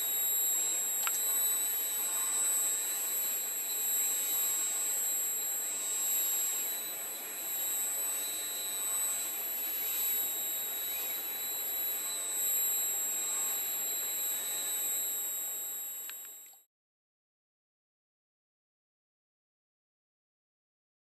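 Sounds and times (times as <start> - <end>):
robot arm high-pitched whine: 0.0 - 16.6.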